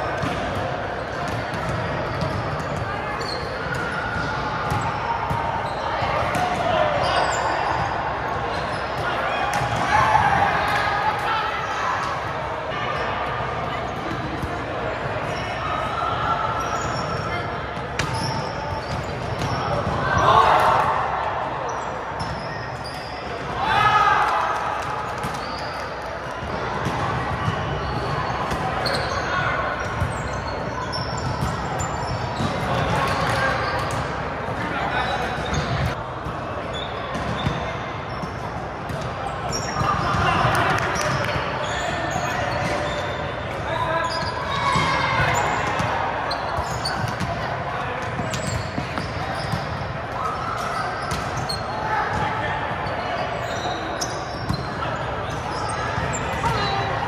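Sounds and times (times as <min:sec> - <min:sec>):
players shouting and chatting: 0:00.0 - 0:57.0.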